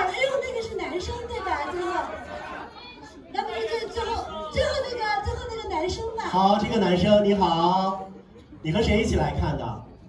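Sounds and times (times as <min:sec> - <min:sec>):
voices talking over one another: 0:00.0 - 0:07.2.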